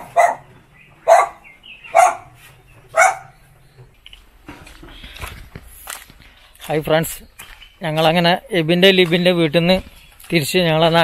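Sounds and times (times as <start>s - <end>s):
dog barking: 0.0s - 3.4s.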